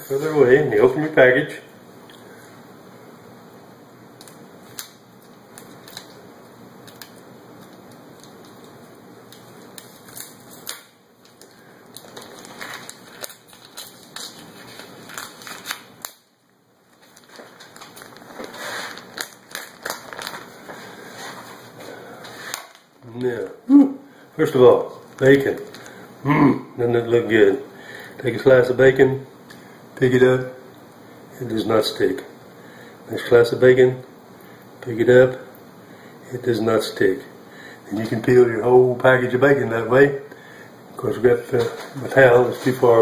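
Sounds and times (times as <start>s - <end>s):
background hiss: 0.0s - 43.0s
plastic package crinkling: 4.2s - 21.6s, 24.9s - 26.0s.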